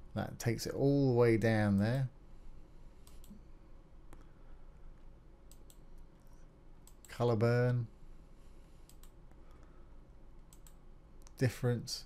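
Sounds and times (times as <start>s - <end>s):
faint computer mouse clicks: 3.0s - 3.4s, 5.5s - 6.1s, 6.8s - 7.2s, 8.8s - 9.5s, 10.4s - 11.4s.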